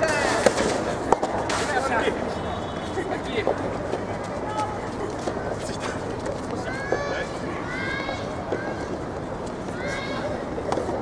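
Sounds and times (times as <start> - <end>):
steady background noise: 0.0 - 11.0
people shouting: 9.8 - 10.4.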